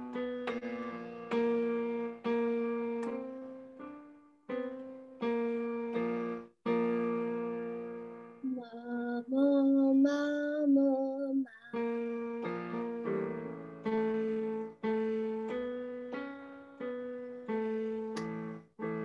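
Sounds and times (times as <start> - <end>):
piano playing: 0.0 - 19.0
woman singing held notes: 8.4 - 11.9.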